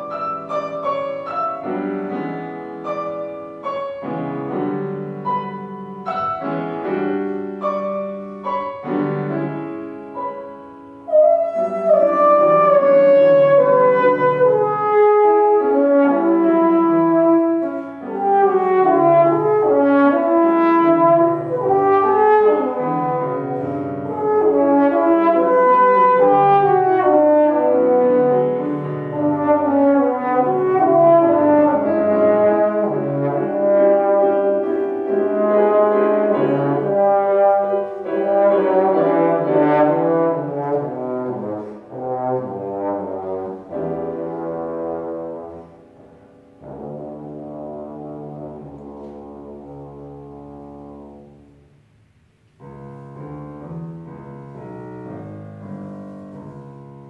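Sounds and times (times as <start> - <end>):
trombone melody: 0.0 - 51.7
grand piano: 0.0 - 57.0.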